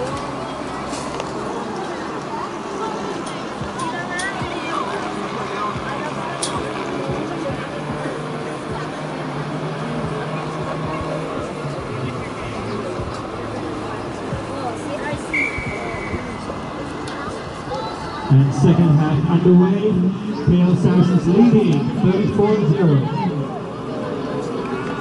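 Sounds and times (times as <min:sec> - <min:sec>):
crowd chatter: 0:00.0 - 0:25.0
referee's whistle long blast: 0:15.3 - 0:16.3.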